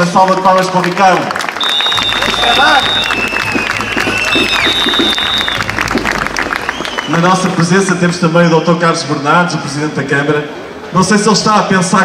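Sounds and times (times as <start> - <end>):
crowd applauding: 0.0 - 8.3.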